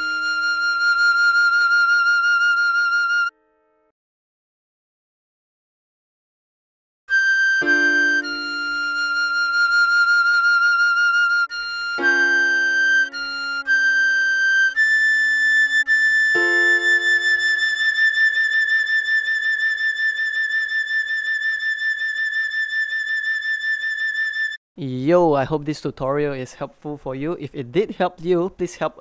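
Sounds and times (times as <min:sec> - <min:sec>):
piano chords: 0:00.0 - 0:01.3, 0:07.6 - 0:10.4, 0:11.5 - 0:18.4
soprano recorder melody: 0:00.0 - 0:03.7, 0:07.1 - 0:24.6.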